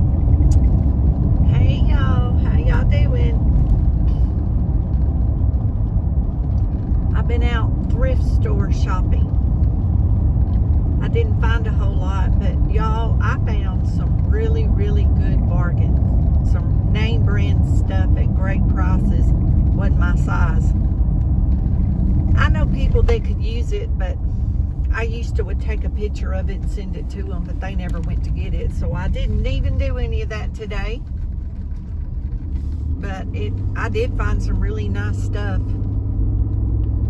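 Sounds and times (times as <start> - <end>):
car road and engine rumble: 0.0 - 37.0
person talking: 24.9 - 31.0.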